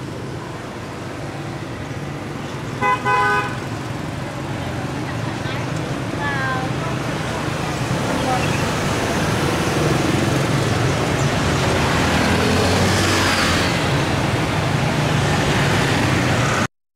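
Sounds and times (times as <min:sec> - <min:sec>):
motorbikes and cars passing: 0:00.0 - 0:16.7.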